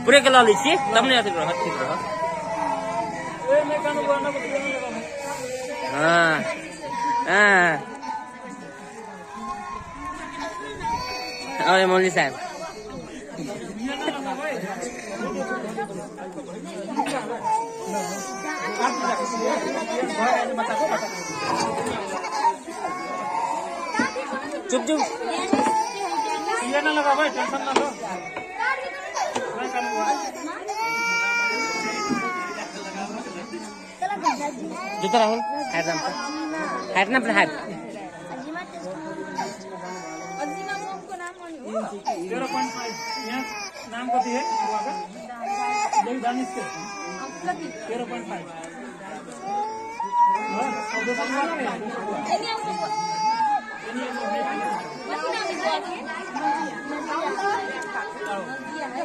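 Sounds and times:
people talking at once: 0.0 - 59.0
toddler crying: 0.4 - 16.1, 16.8 - 37.2, 39.1 - 41.2, 41.9 - 48.3, 49.3 - 57.9.

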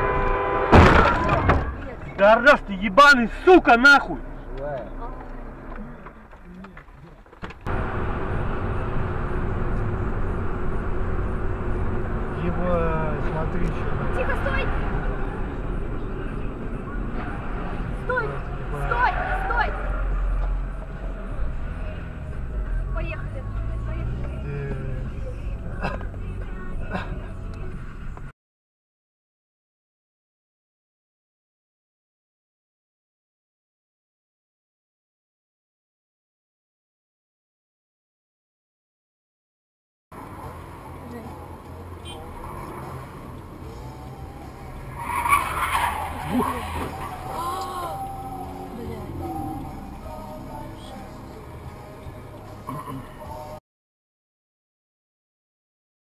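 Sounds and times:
car road and engine rumble: 0.0 - 28.3, 40.1 - 53.6
loud crash of road accident: 0.7 - 1.9
indistinct voices: 45.8 - 53.6.

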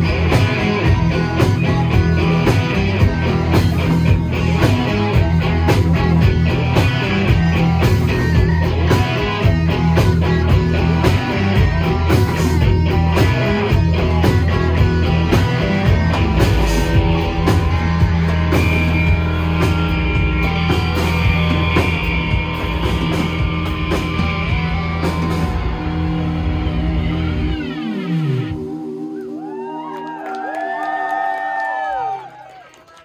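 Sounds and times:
live rock band playing: 0.0 - 29.4
guitar pitch dive: 0.0 - 30.2.

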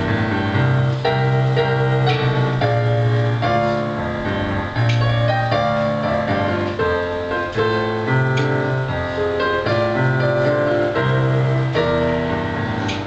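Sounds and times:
slow piano chords: 0.0 - 13.0.

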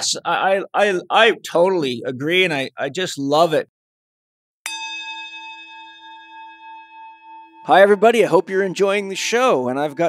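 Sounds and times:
bell-like chime ringing: 4.7 - 10.0.

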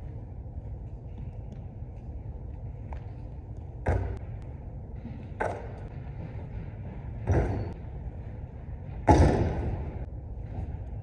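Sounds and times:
low room hum: 0.0 - 11.0
basketball bouncing on wooden floor: 7.2 - 7.8.

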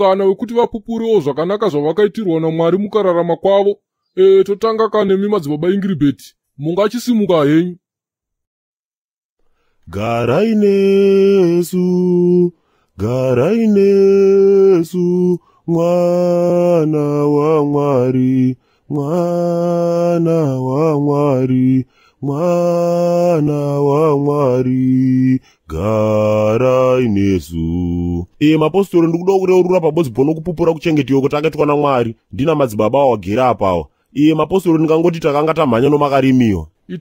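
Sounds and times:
man chanting: 0.0 - 7.8, 9.9 - 37.0.

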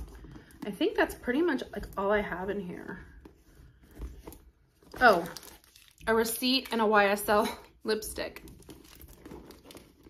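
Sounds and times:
rustling in handbag: 8.4 - 10.0.

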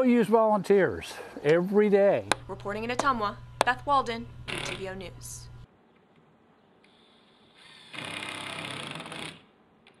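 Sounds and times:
power drill driving a screw: 7.6 - 9.4.

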